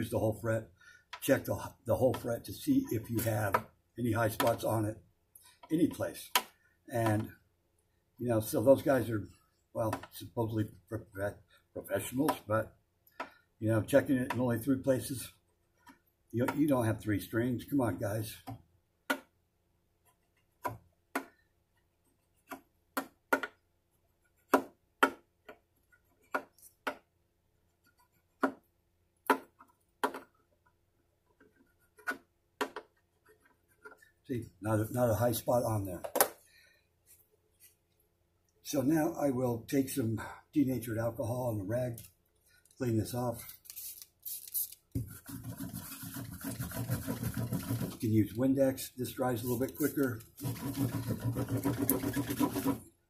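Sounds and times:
cloth rag rubbing fretboard: 49.4s - 52.8s.

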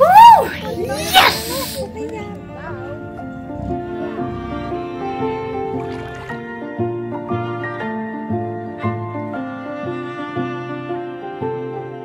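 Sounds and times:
high voice: 0.0s - 2.0s
background music: 0.0s - 12.0s
breathy hiss: 0.8s - 2.0s.

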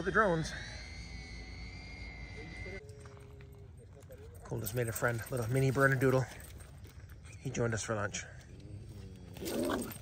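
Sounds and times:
drone propellers whining: 0.0s - 2.8s.

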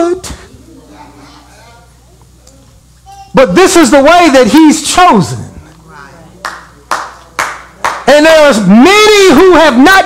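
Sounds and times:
sharp hand claps: 6.4s - 8.1s.

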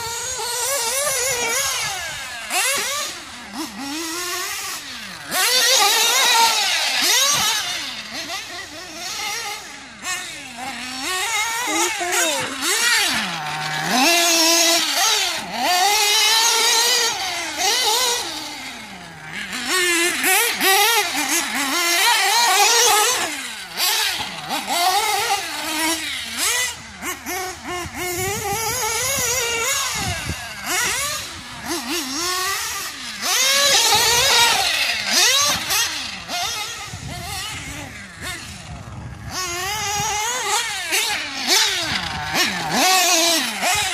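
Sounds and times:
nitro engine revving: 0.0s - 43.9s.

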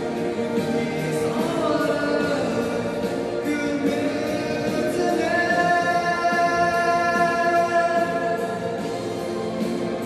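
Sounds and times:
young man singing into microphone: 0.4s - 8.8s.

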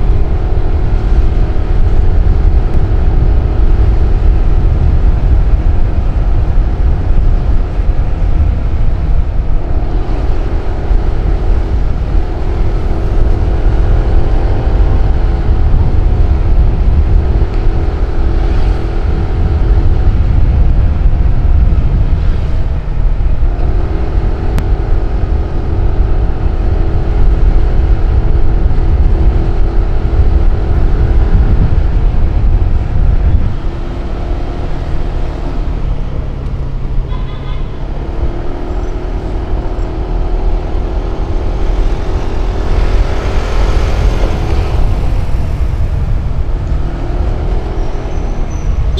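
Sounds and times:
heavy wind: 0.0s - 48.9s
motorcycle engine at speed: 0.0s - 48.9s
road rumble: 0.0s - 48.9s.

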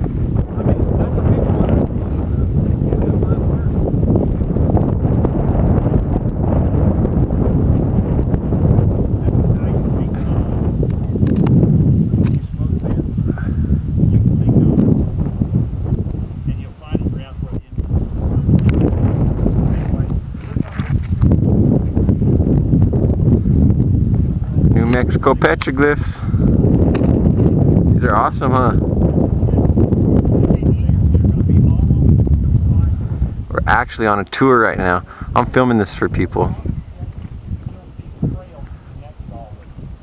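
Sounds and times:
wind buffeting the microphone: 0.0s - 40.0s.

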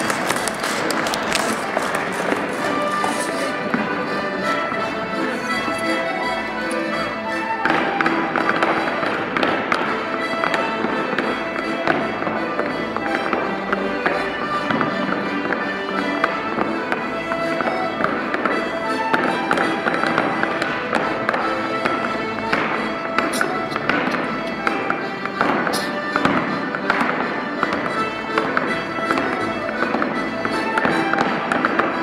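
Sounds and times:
accordion playing a dance tune: 0.0s - 32.0s
clogs stepping on floor: 0.0s - 32.0s.

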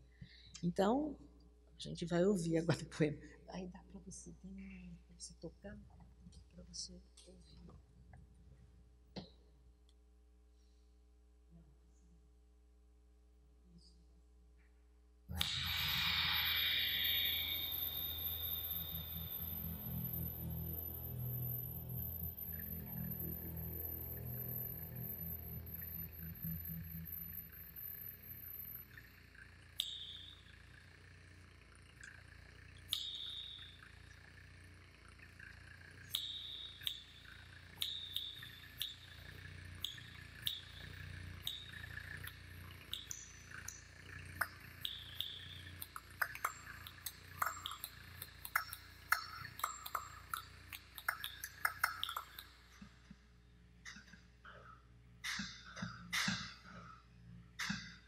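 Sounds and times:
low steady hum: 0.0s - 58.0s
tongue clicks: 36.1s - 43.8s, 44.4s - 53.0s.

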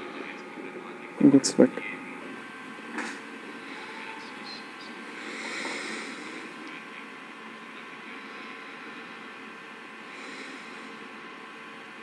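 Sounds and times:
faint hum: 0.0s - 12.0s.

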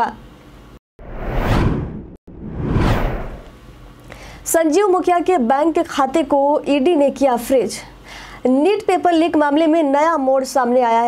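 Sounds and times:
whoosh sound effects: 1.0s - 3.5s.

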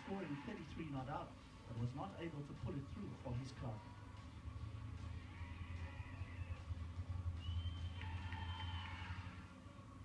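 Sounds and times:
background music from tv speaker: 0.0s - 10.0s
low hum: 3.8s - 10.0s.

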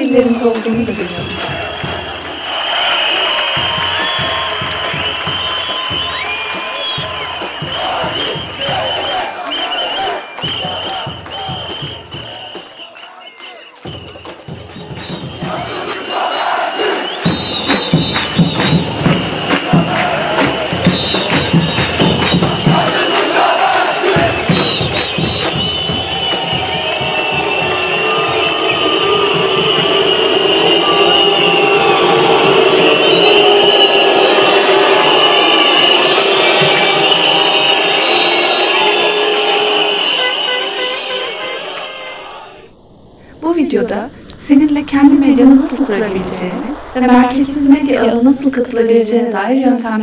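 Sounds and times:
crowd chanting and cheering: 0.0s - 49.3s
sharp rhythmic claps: 0.2s - 16.3s, 17.0s - 30.7s.

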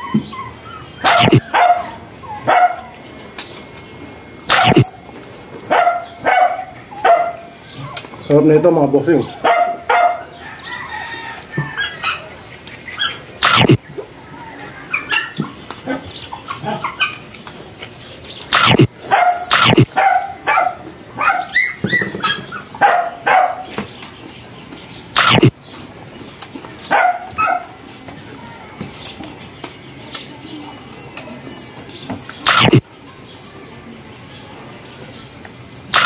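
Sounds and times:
animal yipping and whining: 0.0s - 3.0s, 4.5s - 4.9s, 12.9s - 13.8s, 18.5s - 20.6s, 25.2s - 25.5s, 32.4s - 32.8s.

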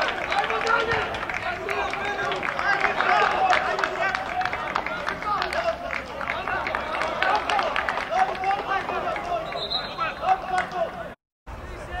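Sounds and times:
men shouting: 1.6s - 9.4s.

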